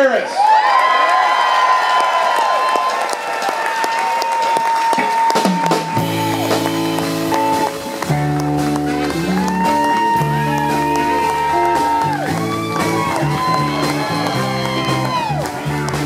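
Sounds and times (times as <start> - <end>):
crowd cheering and applause: 0.0 - 16.0
soul band playing: 5.2 - 16.0
bass playing low chords: 5.9 - 16.0.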